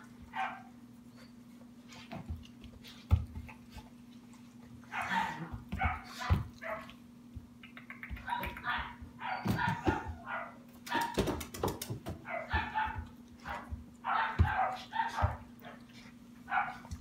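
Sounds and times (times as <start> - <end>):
sharp taps and clicks: 7.6 - 8.9
puppy yipping and whining: 8.3 - 11.1.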